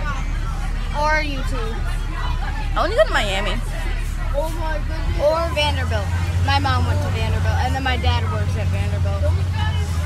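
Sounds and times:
bus engine rumbling: 0:00.0 - 0:10.0
passengers talking: 0:00.0 - 0:10.0.

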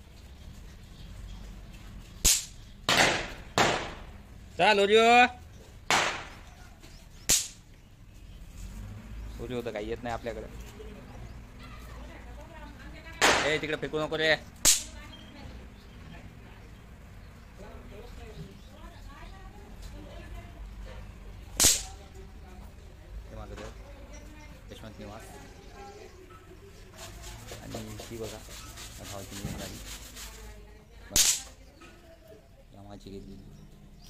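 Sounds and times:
firecracker crack: 0:02.2 - 0:04.2, 0:05.8 - 0:06.5, 0:07.2 - 0:07.7, 0:13.2 - 0:13.7, 0:14.6 - 0:15.0, 0:21.6 - 0:22.0, 0:31.1 - 0:31.6.

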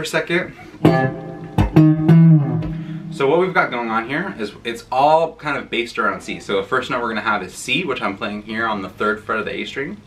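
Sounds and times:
electric guitar plucked notes: 0:00.8 - 0:03.8.

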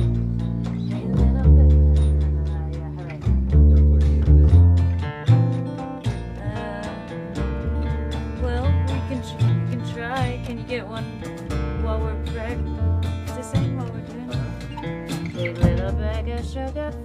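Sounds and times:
acoustic guitar strumming: 0:00.0 - 0:17.0
double bass plucking: 0:00.0 - 0:17.0.

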